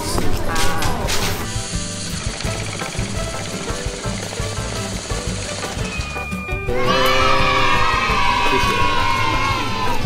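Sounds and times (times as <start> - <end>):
background music with steady beat: 0.0 - 10.0
banknote counting machine whirring: 1.4 - 6.7.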